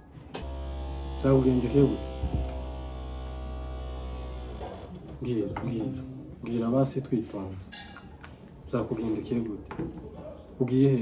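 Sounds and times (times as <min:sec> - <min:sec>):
electrical hum: 0:00.2 - 0:05.2.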